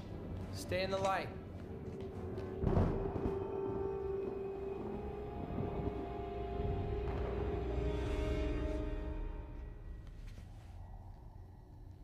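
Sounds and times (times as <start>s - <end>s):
low rumble: 1.4s - 12.0s
held drone note: 1.7s - 10.4s.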